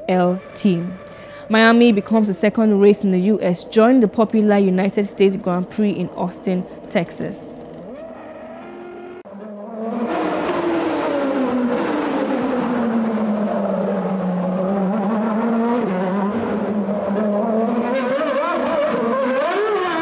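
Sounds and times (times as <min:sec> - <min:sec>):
racing car engine running: 0:07.6 - 0:20.0.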